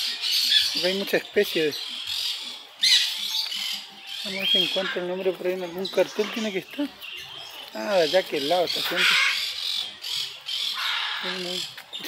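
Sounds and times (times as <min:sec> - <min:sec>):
parrots squawking: 0:00.0 - 0:12.0.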